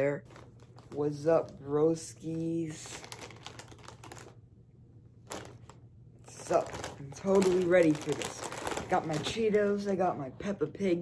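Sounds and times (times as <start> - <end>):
plastic snack bag crinkling: 0.0 - 4.5, 5.2 - 10.1.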